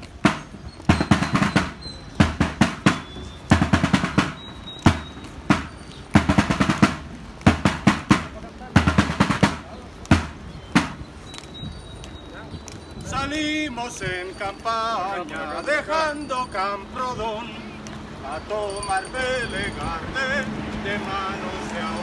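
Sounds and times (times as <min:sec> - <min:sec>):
field drum marching cadence: 0:00.0 - 0:22.0.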